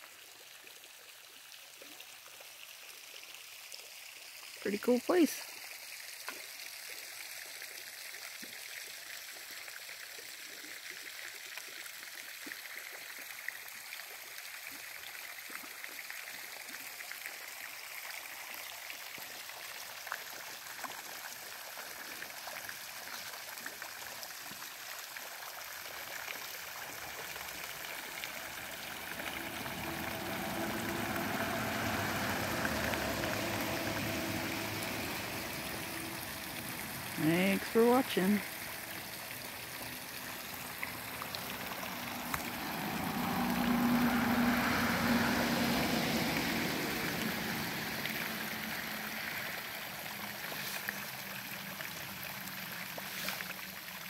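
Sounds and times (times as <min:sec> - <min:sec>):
fountain jets splashing water: 0:00.0 - 0:54.0.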